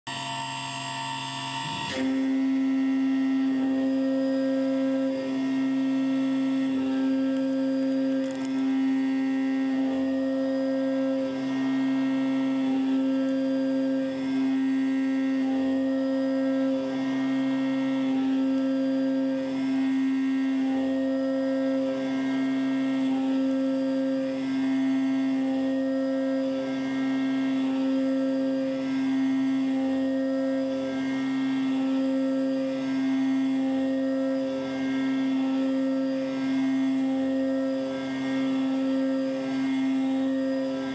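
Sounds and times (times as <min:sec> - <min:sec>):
high cutting tone: 0:00.0 - 0:40.9
milling machine whine: 0:00.1 - 0:40.9.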